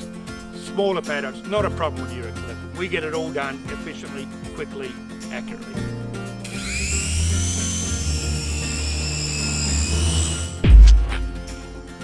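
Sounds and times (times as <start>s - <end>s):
background music with low bass: 0.0s - 12.0s
drone propeller whine: 6.4s - 11.9s
deep boom: 10.6s - 11.6s.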